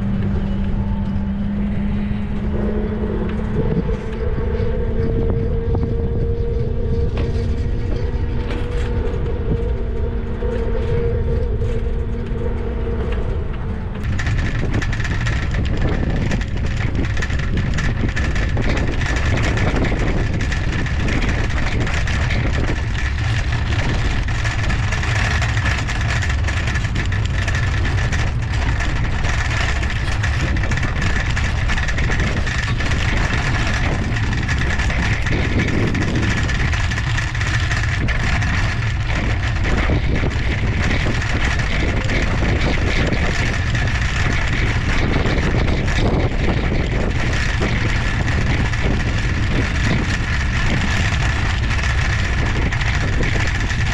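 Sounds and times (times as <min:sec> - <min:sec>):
humming tone: 0:00.0 - 0:53.9
steady high whine: 0:00.0 - 0:53.9
tyre and road noise: 0:00.0 - 0:53.9
wind rushing over microphone: 0:00.0 - 0:53.9.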